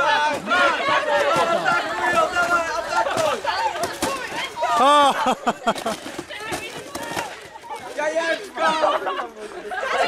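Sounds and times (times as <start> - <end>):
young people talking and shouting: 0.0 - 10.0.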